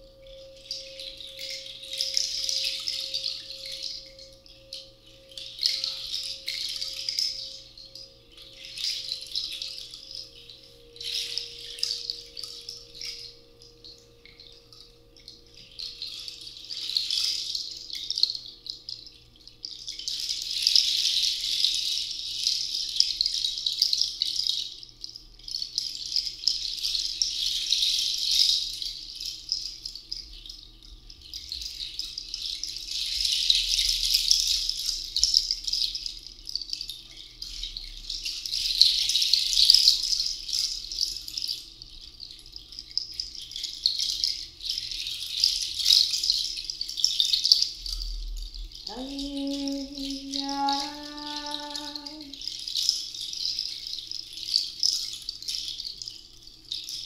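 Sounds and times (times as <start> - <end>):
hand rattle shaken: 0.0 - 57.0.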